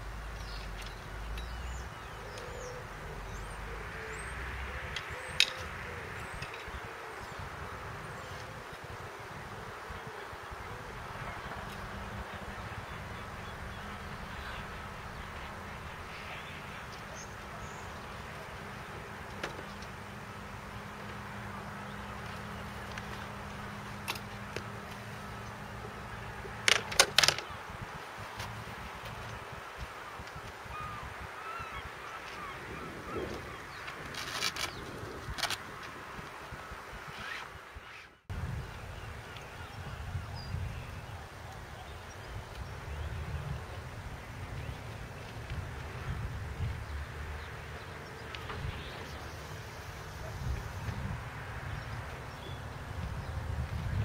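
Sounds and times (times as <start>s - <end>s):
wind: 0.0s - 54.0s.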